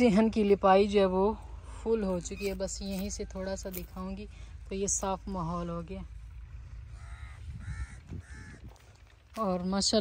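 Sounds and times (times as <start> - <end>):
crows cawing: 6.6 - 9.4.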